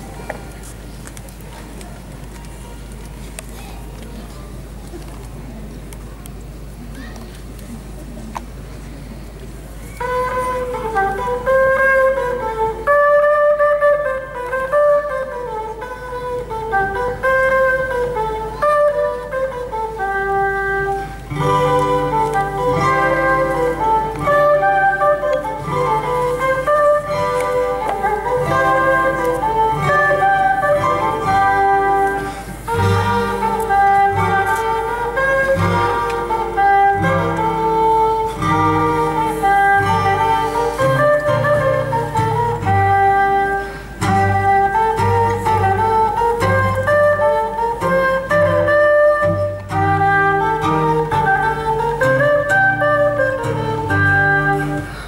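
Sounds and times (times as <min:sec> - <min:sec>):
acoustic guitar accompaniment: 0:06.5 - 0:55.0
harmonica melody: 0:09.9 - 0:55.0.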